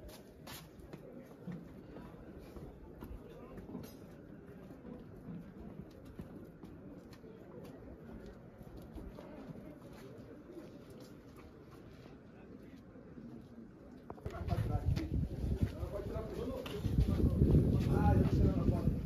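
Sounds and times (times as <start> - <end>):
distant voices of people talking: 0.0 - 19.0.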